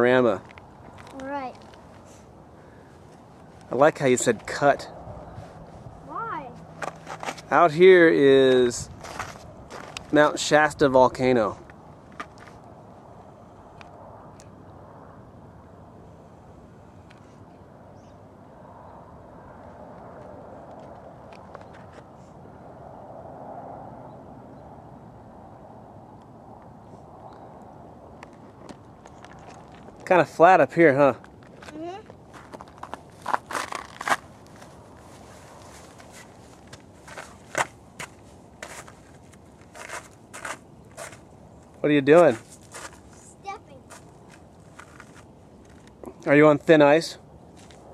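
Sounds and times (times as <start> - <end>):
wind rumble on microphone: 4.4 - 6.1, 8.6 - 15.2
footsteps crunching on rock and ice: 6.7 - 7.6, 8.9 - 10.2, 28.3 - 30.1, 31.2 - 46.0.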